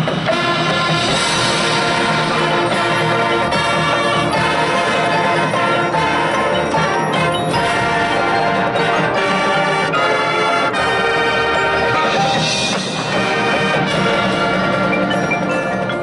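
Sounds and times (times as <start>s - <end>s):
mallet percussion: 0.0s - 16.0s
marching band brass and woodwinds: 0.0s - 16.0s.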